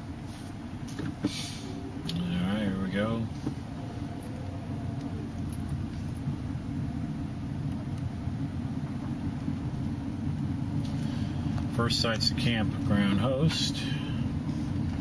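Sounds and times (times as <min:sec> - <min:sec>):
car engine and tyres on gravel: 0:00.0 - 0:15.0.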